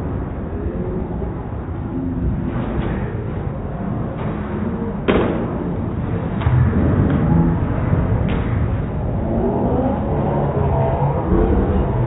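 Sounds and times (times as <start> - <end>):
bowling alley low rumble: 0.0 - 12.0
sharp crack: 5.0 - 7.4.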